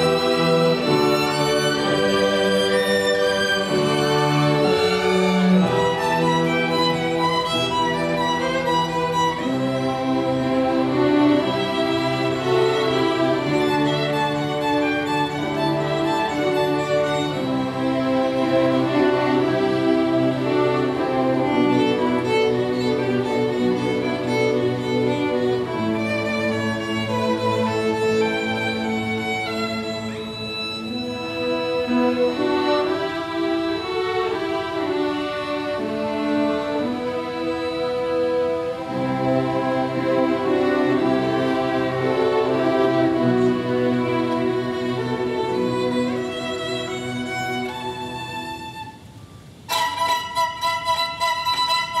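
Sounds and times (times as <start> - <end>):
solo violin: 0.0 - 52.0
string ensemble playing: 0.0 - 52.0.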